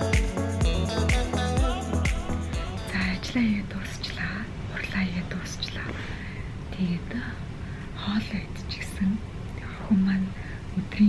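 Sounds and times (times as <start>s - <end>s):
woman whispering: 3.0s - 6.0s.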